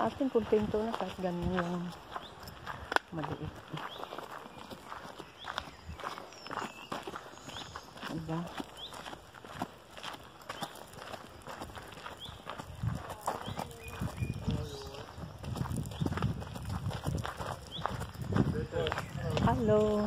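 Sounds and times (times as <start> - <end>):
birds chirping: 0.0 - 20.0
footsteps on gravel: 0.0 - 20.0.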